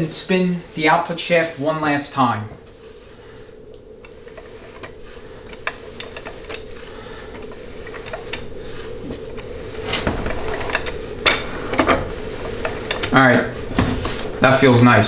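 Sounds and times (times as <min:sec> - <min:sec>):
steady hum: 0:00.0 - 0:15.0.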